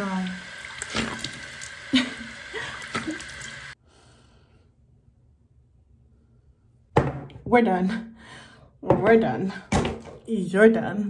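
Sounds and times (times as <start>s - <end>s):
water splashing: 0.0s - 3.8s.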